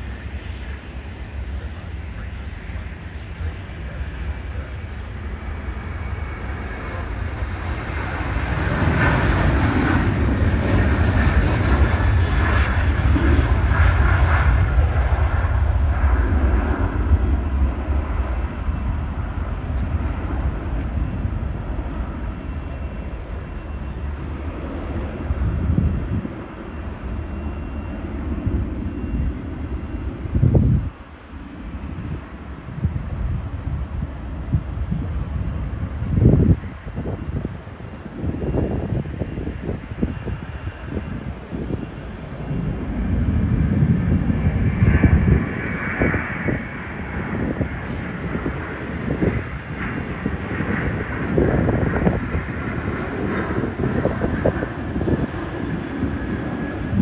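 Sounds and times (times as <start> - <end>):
jet engines at takeoff power: 0.0 - 57.0
wind rumble on microphone: 0.0 - 57.0.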